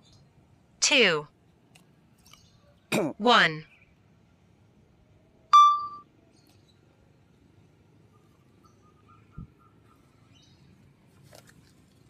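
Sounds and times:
loud electronic beep: 5.6 - 6.0.

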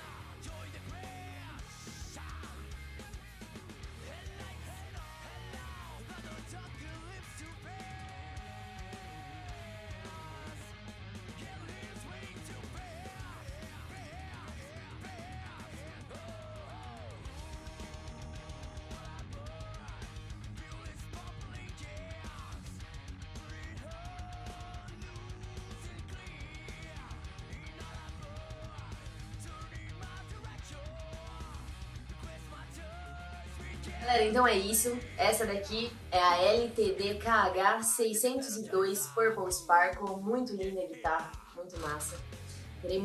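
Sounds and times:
electric guitar music: 0.0 - 16.0, 16.8 - 23.5, 24.9 - 29.9.

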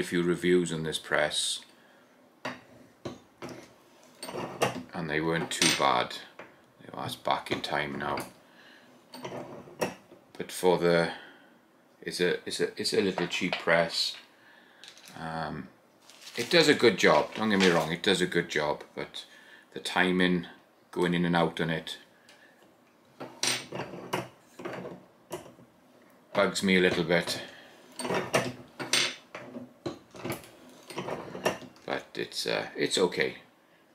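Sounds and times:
light handling noise: 16.0 - 18.0.

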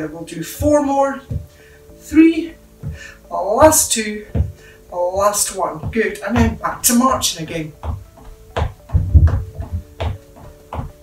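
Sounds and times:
footsteps marching on wooden floor: 0.5 - 11.0.

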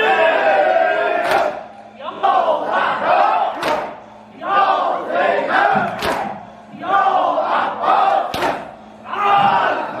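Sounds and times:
men chanting together: 0.0 - 10.0.

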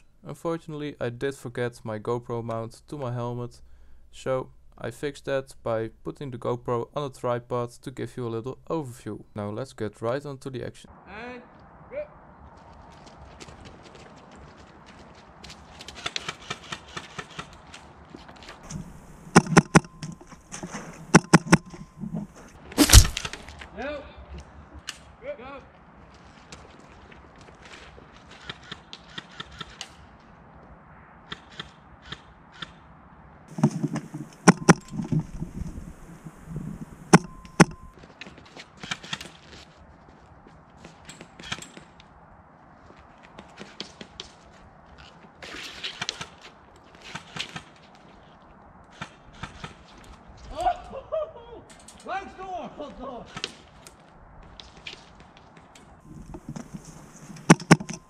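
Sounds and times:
airsoft guns firing: 18.7 - 23.4, 33.5 - 37.9
loud crack: 18.7 - 23.6.

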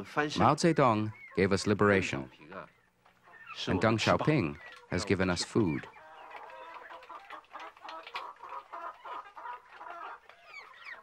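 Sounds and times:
poultry clucking: 0.0 - 11.0.

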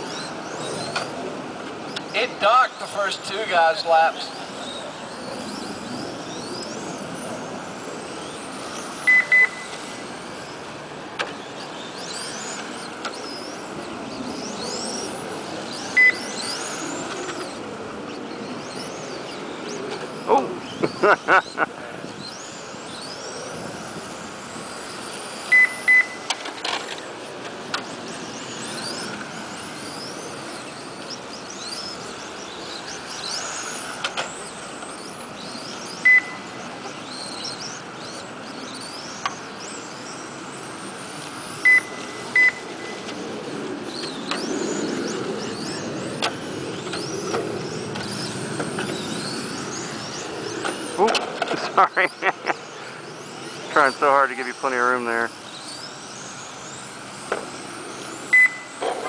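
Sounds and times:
rc car motors whining: 0.0 - 59.0
lap counter electronic beep: 9.1 - 9.8, 16.0 - 16.3, 25.5 - 26.2, 36.0 - 36.4, 41.6 - 43.0, 58.3 - 58.7.

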